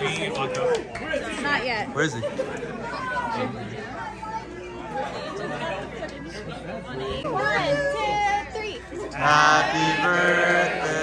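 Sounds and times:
small crowd chattering: 0:00.0 - 0:11.0.

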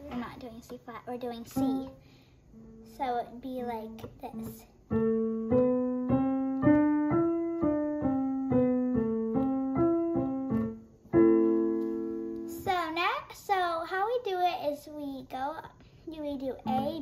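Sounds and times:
child's voice: 0:00.0 - 0:02.0, 0:02.8 - 0:04.8, 0:12.5 - 0:17.0
piano scale and chord: 0:03.9 - 0:12.7.

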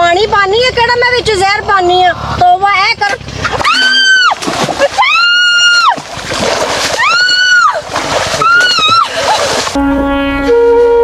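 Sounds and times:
water splashing: 0:03.0 - 0:09.8
woman shrieking: 0:03.6 - 0:06.0, 0:07.0 - 0:07.8, 0:08.4 - 0:09.4.

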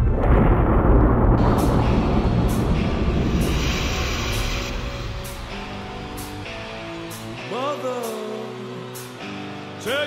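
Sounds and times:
loud rumbling noise: 0:00.0 - 0:07.6
sustained pitched notes: 0:01.4 - 0:08.1.

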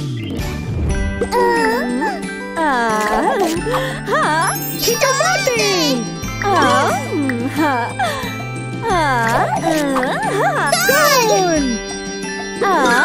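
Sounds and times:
cheerful children's music: 0:00.0 - 0:13.0
cartoon voice sounds: 0:09.0 - 0:11.8.

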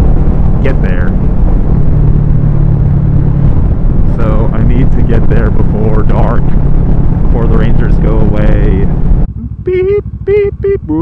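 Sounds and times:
motorcycle engine running: 0:00.0 - 0:11.0
wind rushing over microphone: 0:00.0 - 0:11.0.

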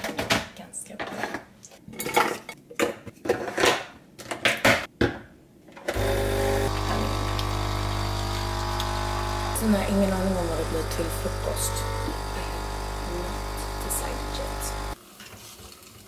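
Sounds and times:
coffee machine pump buzzing: 0:05.9 - 0:15.0.

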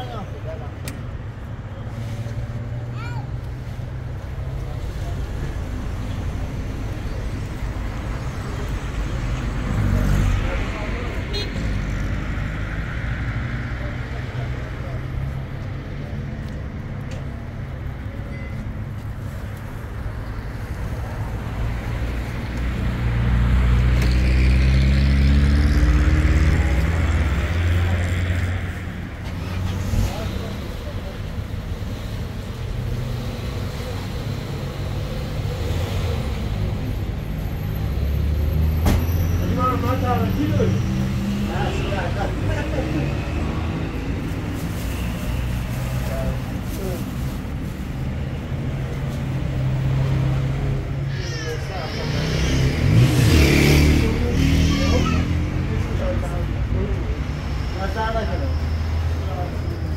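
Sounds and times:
people talking: 0:29.9 - 0:31.4, 0:53.8 - 0:58.6.

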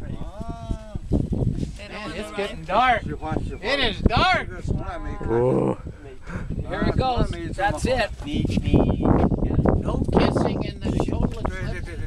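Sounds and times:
murmured voices: 0:04.9 - 0:07.6.

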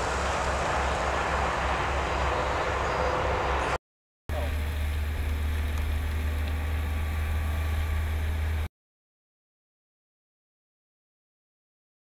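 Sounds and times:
car engine and road noise: 0:00.0 - 0:08.7.

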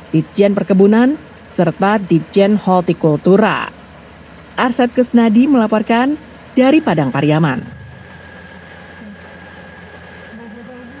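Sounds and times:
combine harvester engine hum: 0:00.0 - 0:11.0
thin high tone: 0:06.6 - 0:11.0.

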